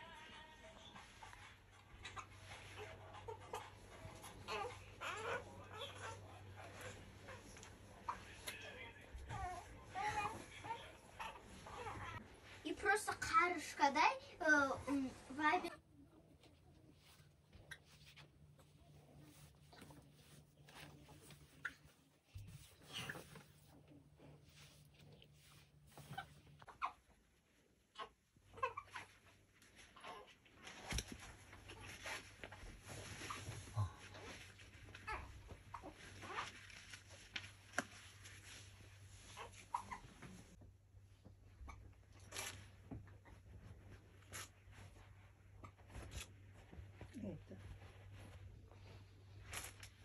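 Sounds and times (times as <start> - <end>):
soft clicks and rustles: 28.8 - 50.0.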